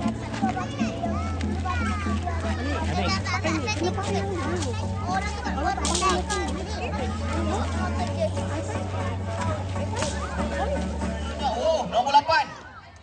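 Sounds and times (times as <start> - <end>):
background music with bass line: 0.0 - 12.3
children chattering and calling out: 0.0 - 13.0.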